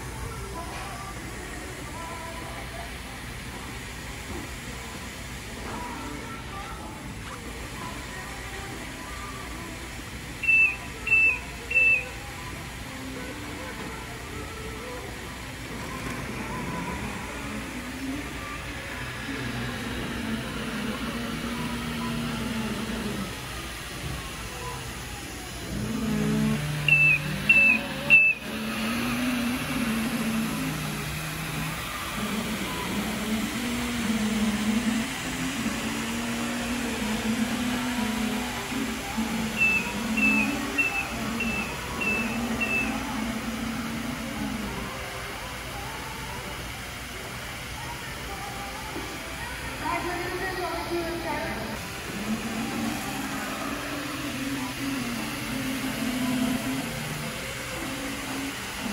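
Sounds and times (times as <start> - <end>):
floor scrubber running: 10.4 - 58.9.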